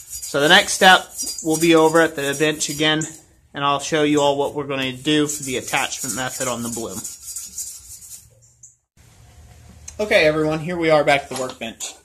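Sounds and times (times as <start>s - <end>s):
sandpaper rubbing on metal: 0.0s - 3.0s, 4.8s - 8.3s.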